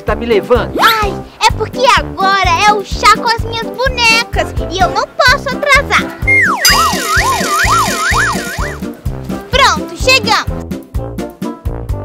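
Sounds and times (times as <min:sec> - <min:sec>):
bouncy children's music: 0:00.0 - 0:12.0
cartoon wobble sound effect: 0:06.3 - 0:08.8.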